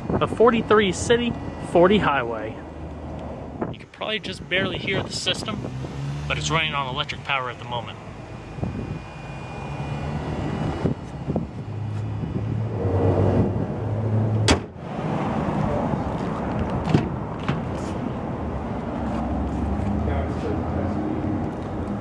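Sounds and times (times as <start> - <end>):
electric car humming: 0.0 - 22.0.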